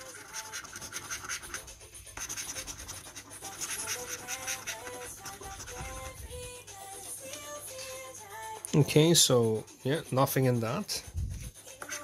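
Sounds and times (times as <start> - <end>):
coin scratching scratchcard: 0.0 - 7.2, 9.8 - 12.0
soft background music: 0.0 - 12.0.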